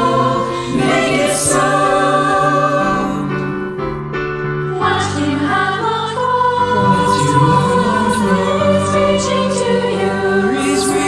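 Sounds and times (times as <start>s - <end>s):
choir singing in harmony: 0.0s - 4.0s, 4.7s - 11.0s.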